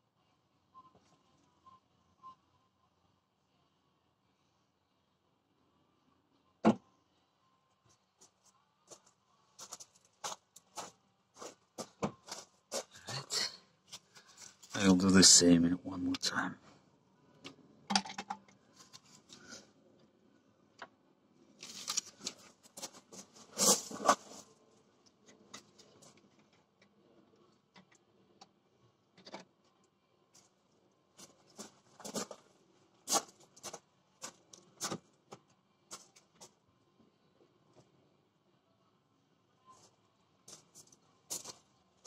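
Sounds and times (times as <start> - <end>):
scraping noises: 21.6 - 24.6.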